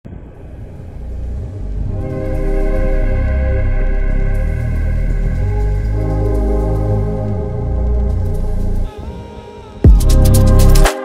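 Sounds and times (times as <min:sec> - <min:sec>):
deep low rumble: 0:00.1 - 0:08.9.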